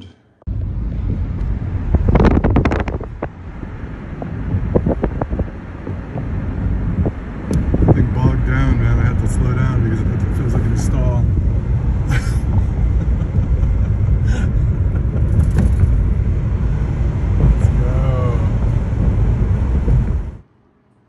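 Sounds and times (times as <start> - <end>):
car interior driving rumble: 0.5 - 20.5.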